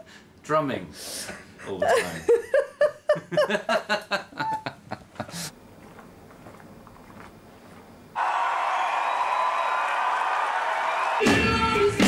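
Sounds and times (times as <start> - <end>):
man laughing: 1.6 - 5.5.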